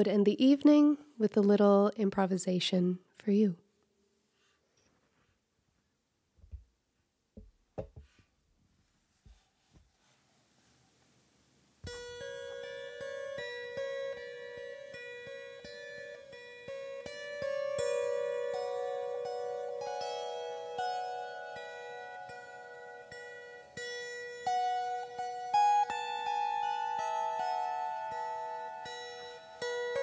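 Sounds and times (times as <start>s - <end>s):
plucked lyre: 11.8s - 30.0s.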